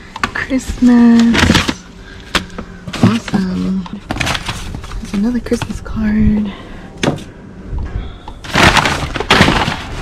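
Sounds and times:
paper bags and cardboard rustling: 0.3 - 5.9, 8.4 - 10.0.

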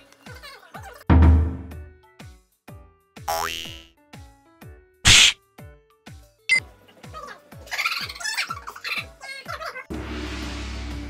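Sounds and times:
light music with plucked notes: 3.2 - 4.4
cartoon boing rising in pitch: 3.3 - 3.9.

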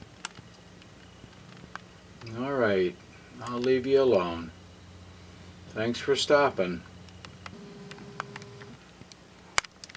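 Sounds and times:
zoom motor whirring: 7.5 - 8.8.

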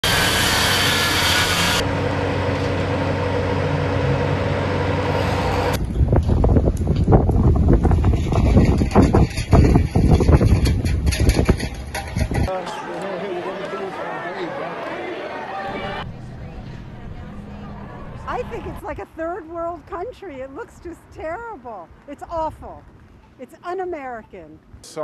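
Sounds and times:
engine and traffic noise: 0.0 - 7.0
street noise: 0.0 - 25.0
wind buffeting microphone: 5.2 - 12.5.

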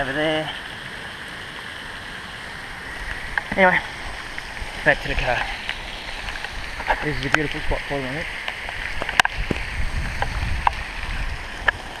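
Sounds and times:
steady rain: 0.0 - 12.0
wind rumble on microphone: 4.0 - 12.0.

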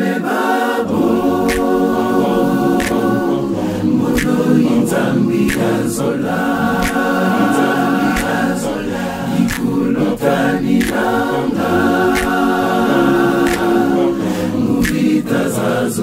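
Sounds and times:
male vocal group singing a cappella: 0.0 - 16.0
light clicks keeping time: 1.2 - 14.2, 14.8 - 15.3.

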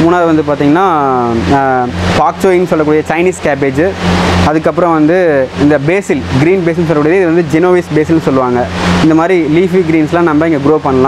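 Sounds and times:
man speaking: 0.0 - 11.0
steady low hum: 0.0 - 11.0.

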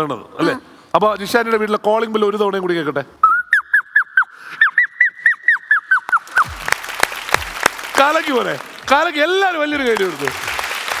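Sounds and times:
boy making whistle-like chirps: 3.2 - 6.6
audience applause: 6.1 - 11.0.

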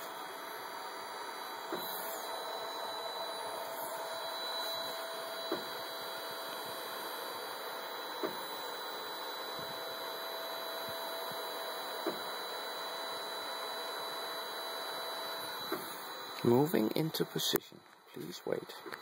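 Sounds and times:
printer humming with whine: 0.0 - 19.0.

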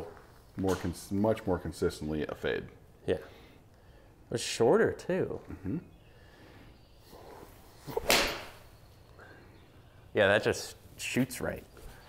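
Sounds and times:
golf club striking ball: 7.9 - 8.7.

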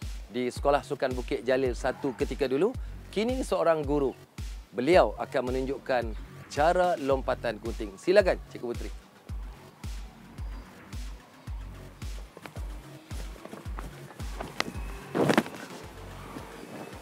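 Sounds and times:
background music with low beat: 0.0 - 17.0.

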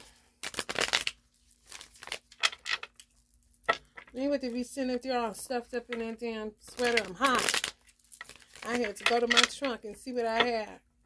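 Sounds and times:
cards being shuffled: 0.0 - 4.1, 6.7 - 9.6.

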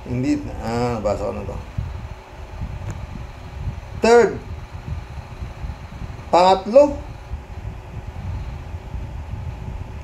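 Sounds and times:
low steady rumble: 0.0 - 10.0.

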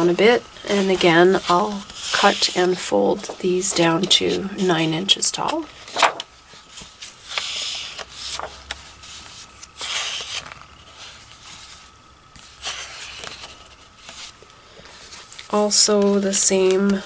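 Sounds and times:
paper sheets rustling and sliding: 0.6 - 17.0.

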